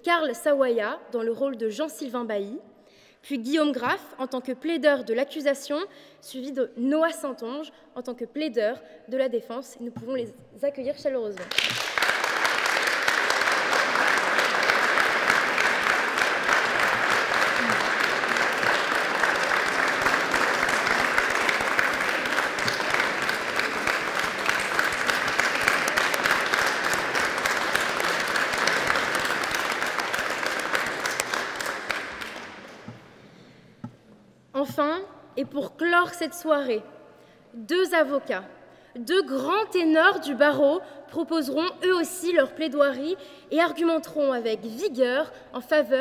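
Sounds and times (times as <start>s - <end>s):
audience applauding: 11.4s - 33.2s.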